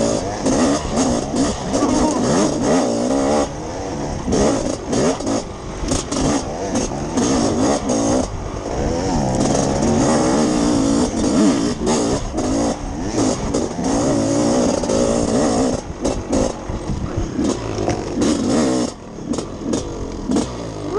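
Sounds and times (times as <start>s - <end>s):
two-stroke dirt bike engine revving: 0.0s - 20.9s.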